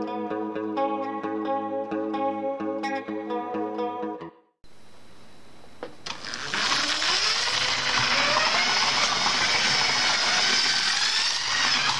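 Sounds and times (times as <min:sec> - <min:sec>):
toy train motor whirring: 0:06.1 - 0:11.9.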